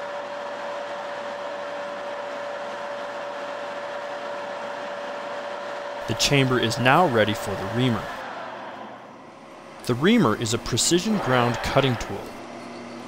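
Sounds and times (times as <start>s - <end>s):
metal lathe whining: 6.0s - 13.0s.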